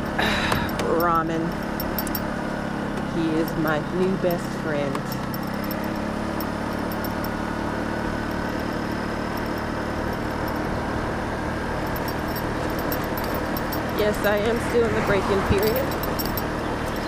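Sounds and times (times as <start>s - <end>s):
scooter engine running: 0.0s - 17.0s
wind and road noise: 0.0s - 17.0s.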